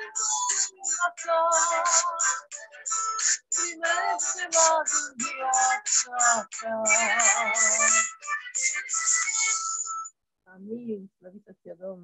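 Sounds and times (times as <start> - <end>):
person singing: 0.0 - 9.6
instrumental music: 0.0 - 10.2.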